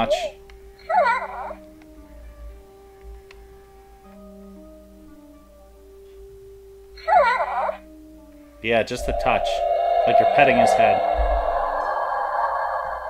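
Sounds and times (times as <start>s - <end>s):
soft held musical notes: 0.0s - 7.1s, 7.7s - 13.0s.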